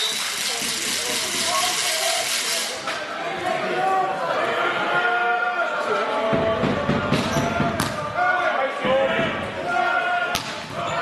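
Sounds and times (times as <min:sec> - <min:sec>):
players shouting: 0:03.2 - 0:11.0.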